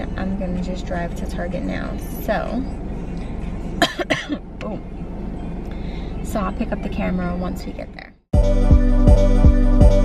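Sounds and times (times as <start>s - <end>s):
woman coughing: 3.8s - 4.5s.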